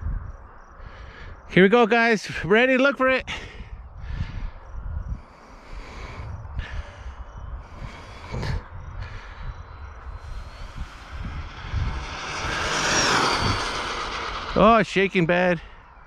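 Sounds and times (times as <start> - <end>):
electric motor whine: 10.0 - 14.6.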